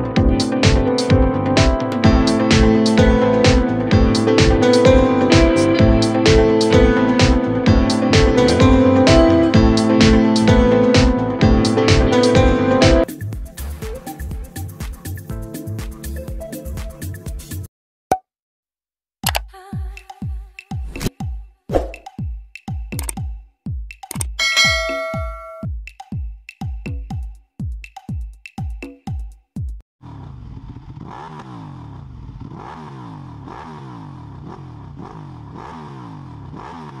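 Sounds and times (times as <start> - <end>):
background music with steady beat: 0.0 - 17.7, 19.3 - 29.8
motorcycle engine revving: 0.1 - 13.8, 30.0 - 37.0.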